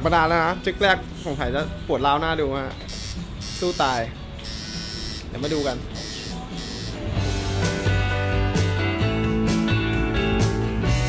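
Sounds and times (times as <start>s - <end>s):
background music: 0.0s - 11.0s
tattoo machine buzzing: 2.9s - 7.1s.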